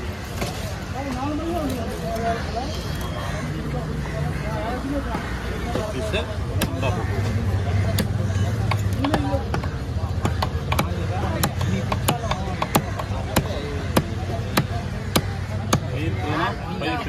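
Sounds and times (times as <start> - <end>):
cleaver chopping on wooden block: 7.9 - 15.9.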